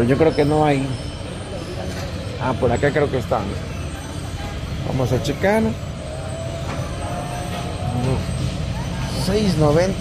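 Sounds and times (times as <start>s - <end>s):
faint voices of shoppers: 0.0s - 10.0s.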